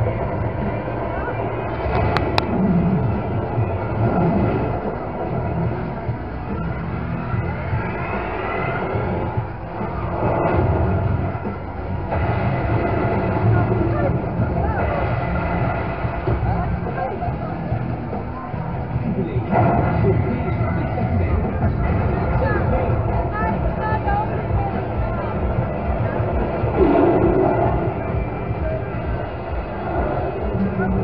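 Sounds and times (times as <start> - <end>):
machine rumble: 0.0 - 31.0
music: 0.0 - 31.0
voices: 0.0 - 31.0
rising whistle-like tones: 26.8 - 29.0.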